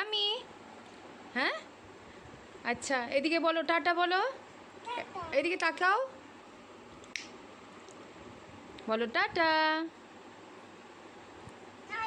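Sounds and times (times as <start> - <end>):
young child's high voice: 4.8 - 5.4.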